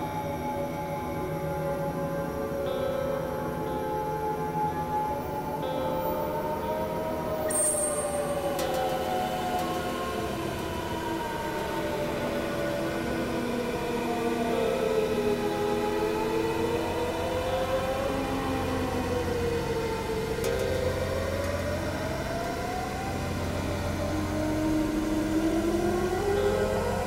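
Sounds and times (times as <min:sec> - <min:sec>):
synthesizer drone music: 0:00.0 - 0:27.0.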